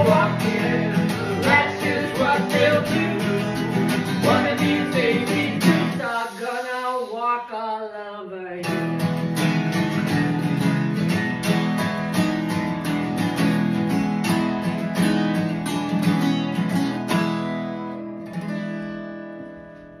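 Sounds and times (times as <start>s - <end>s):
guitars strumming: 0.0s - 7.4s, 8.6s - 20.0s.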